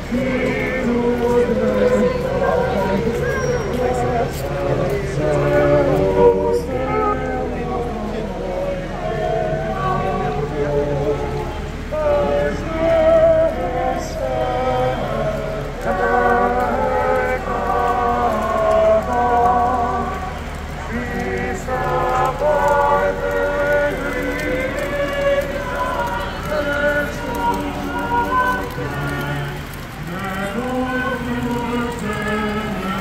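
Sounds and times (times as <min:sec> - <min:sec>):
low street noise rumble: 0:00.0 - 0:33.0
men chanting a hymn: 0:00.0 - 0:33.0.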